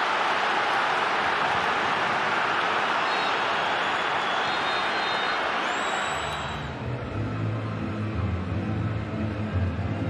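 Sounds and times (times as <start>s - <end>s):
stadium crowd roar: 0.0s - 6.9s.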